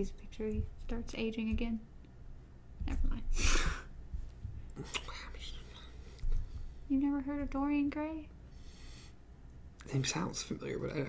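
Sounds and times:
person whispering: 4.8 - 6.0
soft breathy burst: 8.4 - 9.3.

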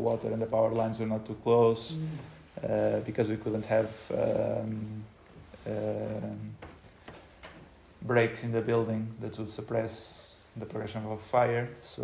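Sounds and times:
person saying uh: 1.8 - 2.9.

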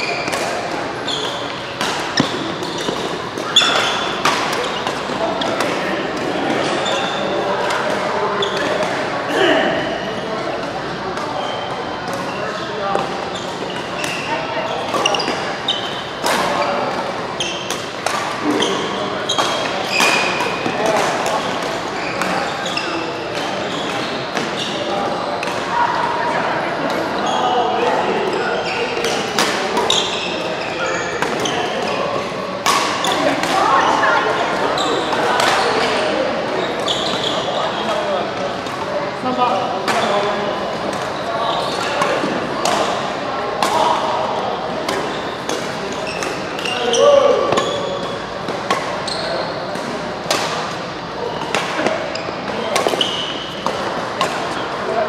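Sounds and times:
rackets hitting shuttlecock: 0.2 - 9.0, 29.0 - 30.5, 31.1 - 33.6, 34.5 - 36.1, 40.8 - 54.6.

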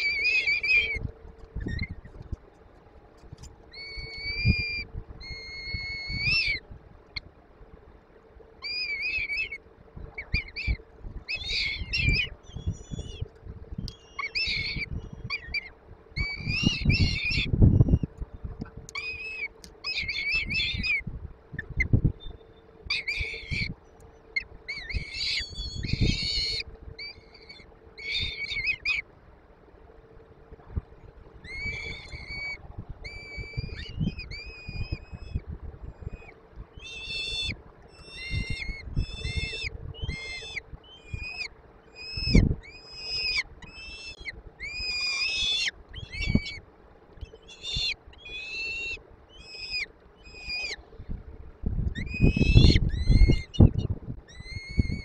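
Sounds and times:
falcon chicks begging calls: 36.8 - 46.6.

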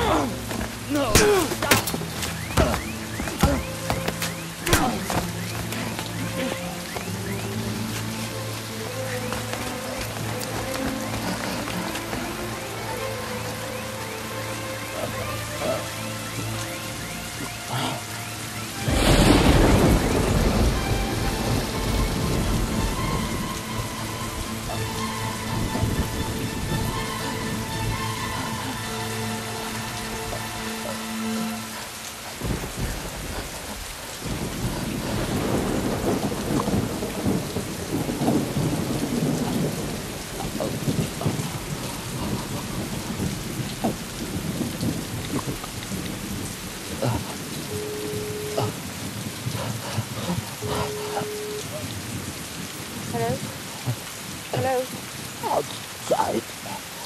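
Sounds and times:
heavy rain on a street: 0.0 - 57.0
thunderclap rumbling: 18.8 - 28.8, 32.4 - 55.8.

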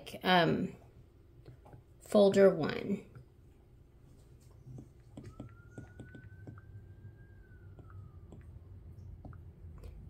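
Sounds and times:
stylus tapping on glass screen: 4.7 - 6.7, 7.7 - 8.5.

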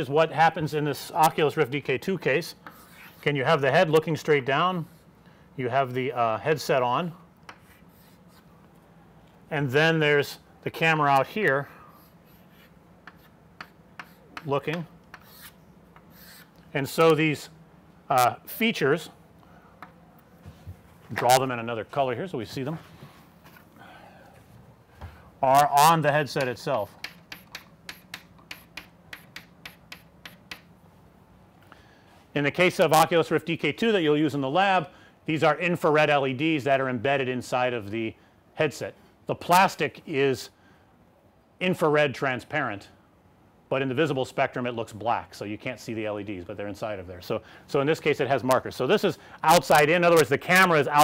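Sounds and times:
chalk tapping on chalkboard: 2.6 - 3.2, 7.5 - 8.5, 12.3 - 16.5, 26.9 - 30.7
chalk scratching on chalkboard: 2.6 - 3.4, 7.5 - 8.5, 11.9 - 14.5, 15.1 - 16.5.

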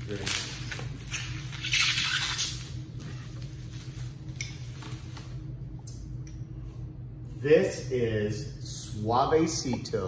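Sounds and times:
bubble wrap crinkling: 0.0 - 5.3.

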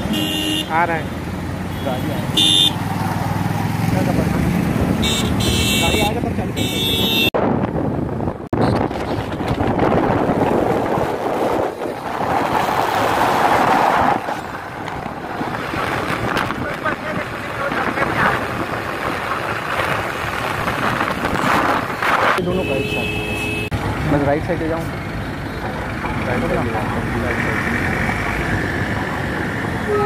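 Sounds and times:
highway traffic noise: 0.0 - 30.0
wind rushing over microphone: 7.3 - 22.4.

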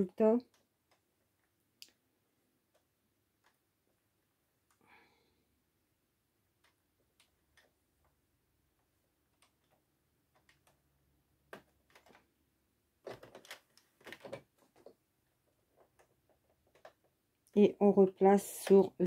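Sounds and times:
knitting needles clicking: 0.0 - 4.0, 6.4 - 12.3, 13.0 - 17.6.

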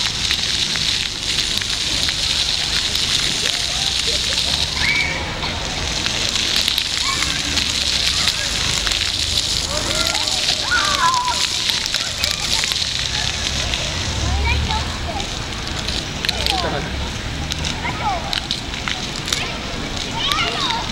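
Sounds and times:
fountain water splashing on pavement: 0.0 - 20.9.

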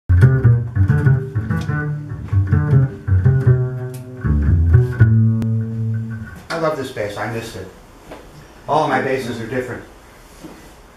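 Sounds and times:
double bass plucked pizzicato: 0.1 - 6.4.

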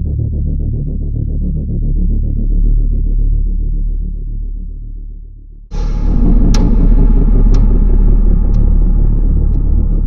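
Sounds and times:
loud deep rumble: 5.7 - 10.0.

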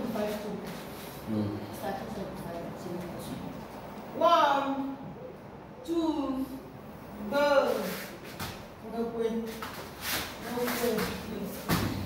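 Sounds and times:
bare feet scuffling on mat: 7.7 - 8.7, 9.4 - 12.0
heavy thump on mat: 11.6 - 12.0.

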